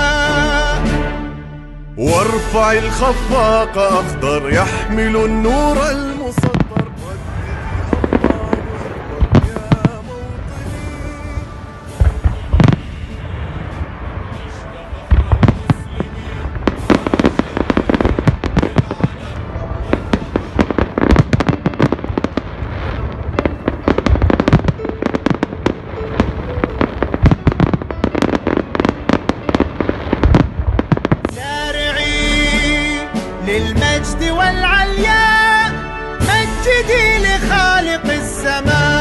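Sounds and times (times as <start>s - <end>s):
fireworks crackling: 2.0s - 34.0s
fireworks bangs: 2.1s - 34.1s.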